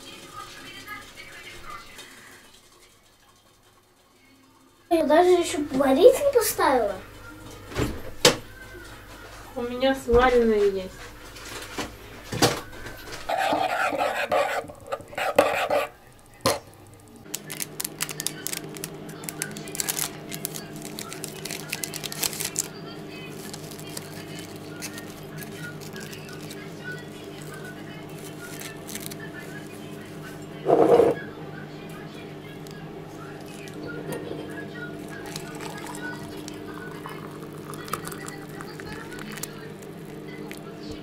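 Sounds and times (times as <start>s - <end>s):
steady hum: 5.3s - 41.0s.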